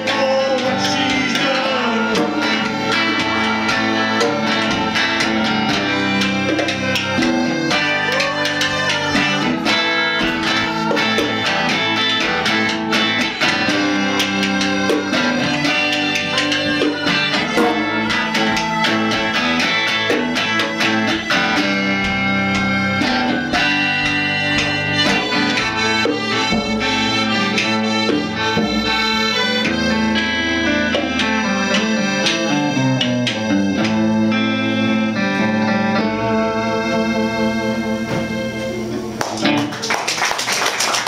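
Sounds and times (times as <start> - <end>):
djembe hand drum: 0.0 - 34.0
accordion chords: 0.0 - 39.2
electric guitar lead line: 0.0 - 41.0.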